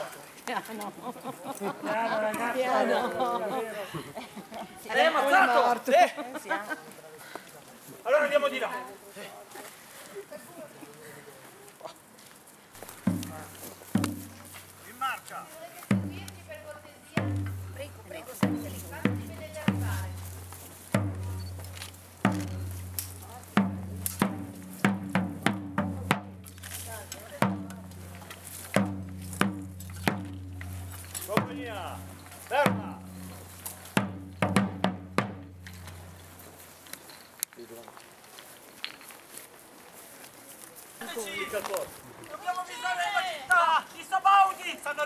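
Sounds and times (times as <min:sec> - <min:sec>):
field drum beating: 0:12.8 - 0:14.7, 0:15.9 - 0:36.4.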